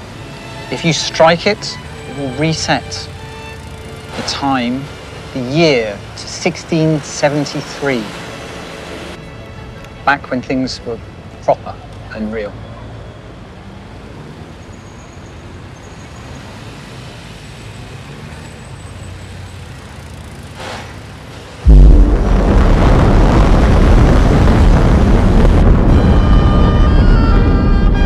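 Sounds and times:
street traffic: 0.0 - 21.7
loud boom with heavy rushing: 21.6 - 26.4
music: 25.9 - 28.0.

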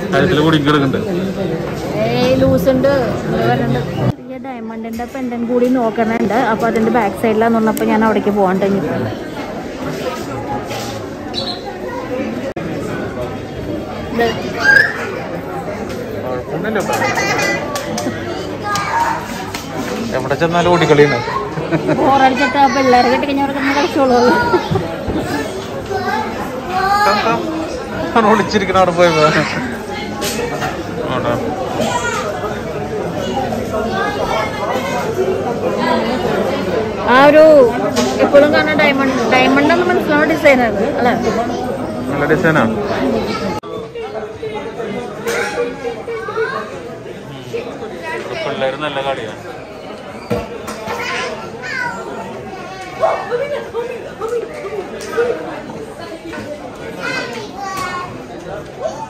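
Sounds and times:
people talking: 0.0 - 50.0
people chattering: 0.0 - 59.0
children's voices: 16.8 - 19.9, 20.7 - 30.5, 31.6 - 42.1, 42.9 - 44.3, 45.2 - 48.6, 50.6 - 59.0.

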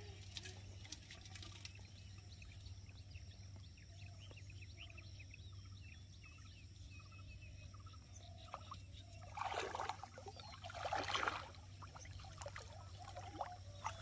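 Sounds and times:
low steady hum: 0.0 - 14.0
small birds chirping: 0.0 - 14.0.

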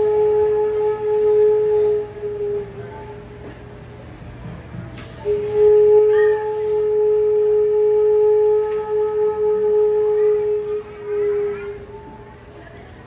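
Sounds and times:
long held musical note: 0.0 - 3.8, 5.2 - 12.7.

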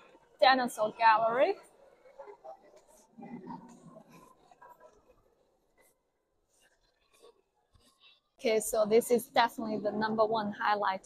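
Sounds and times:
murmur of voices: 0.0 - 6.0.

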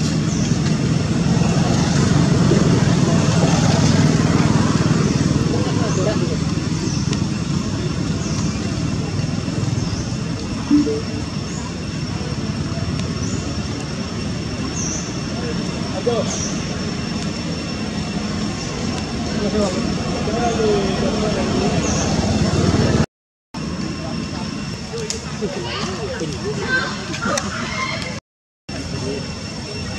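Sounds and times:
low traffic rumble: 0.0 - 29.9
distant voices: 0.1 - 23.0
faint high chirps: 9.7 - 12.0.

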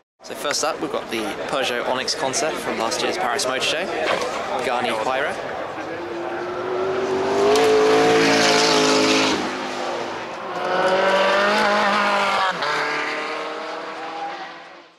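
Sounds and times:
car engine accelerating hard: 5.8 - 14.9.

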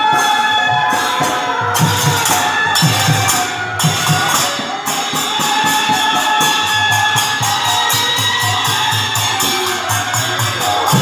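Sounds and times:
hand cymbals struck fast: 0.0 - 11.0.

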